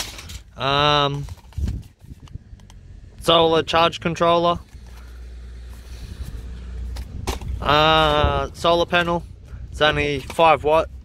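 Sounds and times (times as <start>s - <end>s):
low vehicle rumble: 0.0s - 11.0s.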